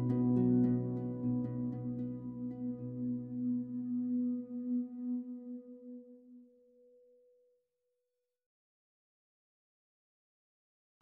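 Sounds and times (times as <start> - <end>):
soft background music note: 0.0 - 7.5.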